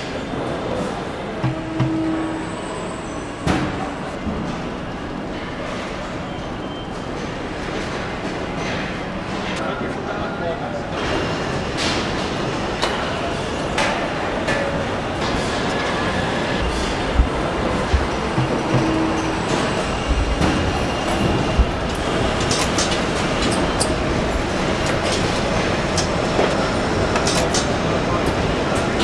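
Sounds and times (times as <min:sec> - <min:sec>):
machinery rumble and hum: 0:00.0 - 0:04.6, 0:11.4 - 0:29.0
low thumps: 0:16.7 - 0:19.4.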